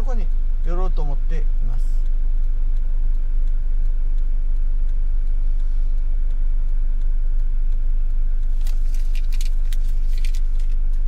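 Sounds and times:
van engine idling: 0.0s - 11.0s.

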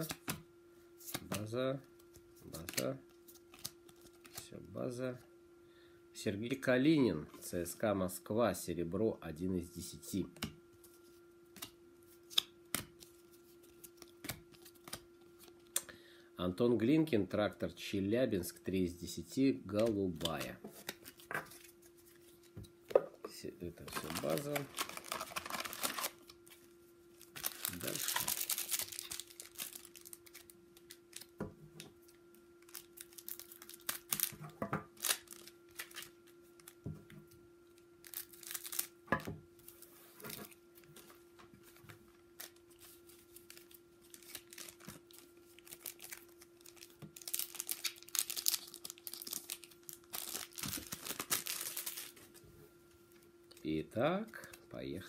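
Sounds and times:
faint steady hum: 0.0s - 55.0s
card wrappers crinkling and tearing: 2.1s - 4.5s, 11.6s - 15.8s, 19.8s - 22.5s, 23.8s - 31.4s, 32.6s - 36.8s, 38.0s - 39.0s, 42.1s - 52.3s.

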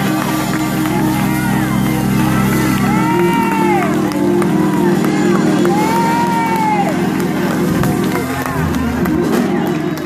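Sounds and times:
church music: 0.0s - 10.0s
congregation shouting: 0.0s - 10.0s
people clapping: 0.0s - 10.0s.

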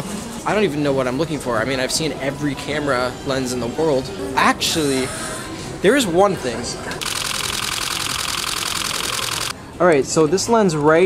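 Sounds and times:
camera shutter burst clicks: 7.0s - 9.5s.

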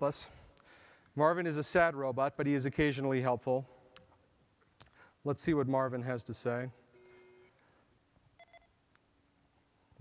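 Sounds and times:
faint electronic double beep: 6.9s - 7.6s, 8.4s - 8.8s.

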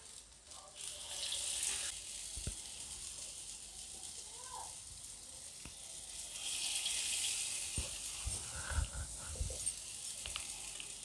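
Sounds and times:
food deep-frying in oil: 0.0s - 11.0s.

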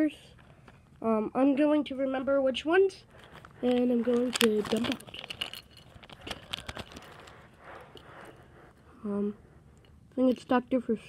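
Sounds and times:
plastic packet rustling: 3.0s - 8.3s
plastic toy pieces clicking: 3.2s - 7.3s.

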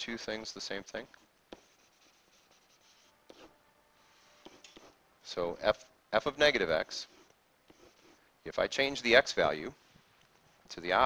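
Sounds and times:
stylus scratching whiteboard: 1.5s - 5.0s, 6.9s - 8.2s.

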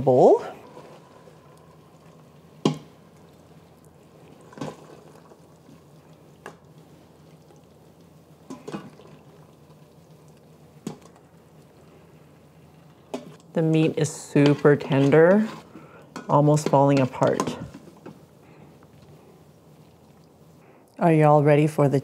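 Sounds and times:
wet sauce sounds: 0.2s - 20.6s
spoon scraping metal pot: 14.4s - 17.6s.

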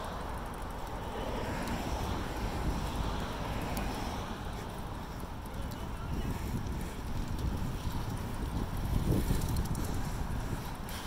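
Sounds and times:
bicycle tyres on pavement: 0.0s - 11.0s
wind buffeting microphone: 1.2s - 11.0s.

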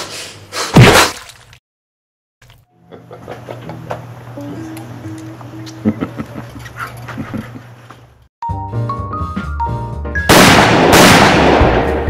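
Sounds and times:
low steady hum: 2.8s - 7.6s
man chuckling breathily: 5.8s - 7.7s.

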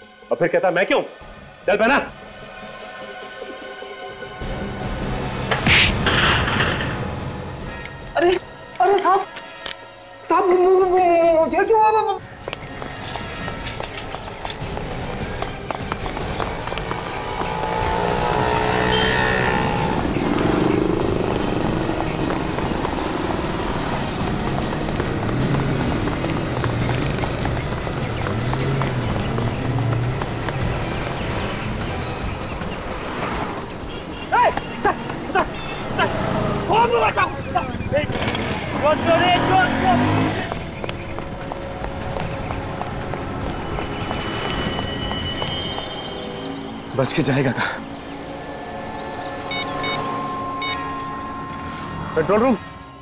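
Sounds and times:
dramatic music with driving beat: 0.0s - 53.0s
street traffic: 0.0s - 53.0s.

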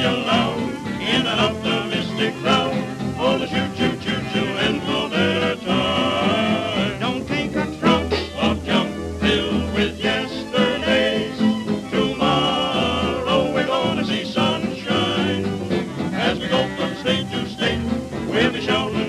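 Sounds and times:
jazz dance band playing: 0.0s - 19.0s.

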